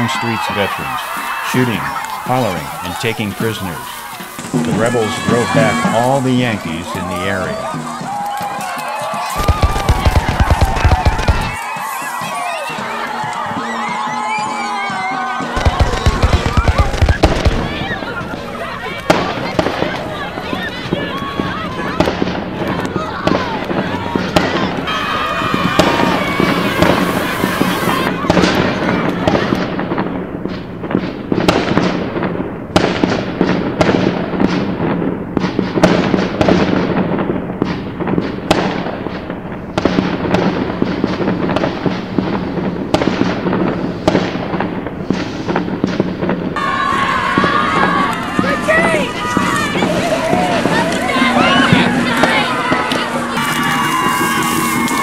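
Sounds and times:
crowd of young voices shouting: 0.0 - 29.9, 46.6 - 55.0.

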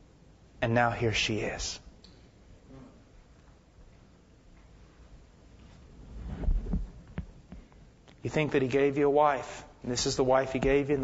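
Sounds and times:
low thuds: 6.1 - 7.7.

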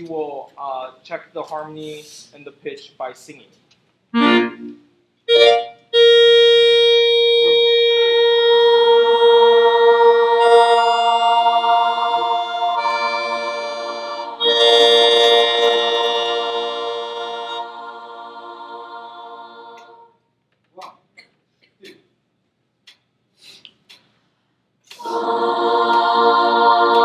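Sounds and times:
electronic keyboard organ chords: 4.2 - 20.0, 25.1 - 27.0
students singing held notes: 8.0 - 20.1, 24.9 - 27.0.

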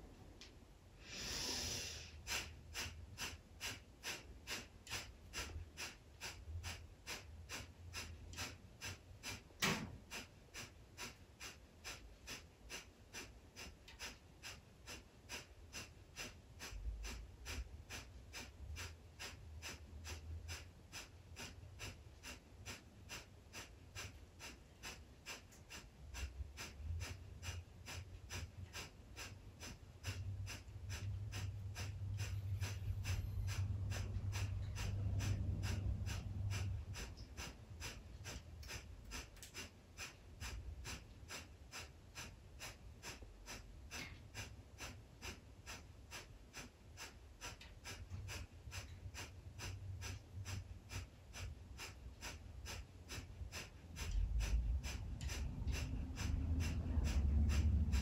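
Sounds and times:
forceful breaths through the nose: 1.0 - 58.0
low hum: 30.7 - 37.7.

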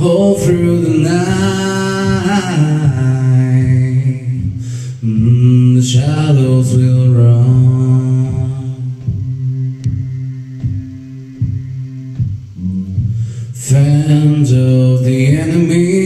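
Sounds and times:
soft knocking beat: 0.0 - 15.8
deep bass voice humming: 0.0 - 16.0
male voices harmonising: 0.0 - 16.0.

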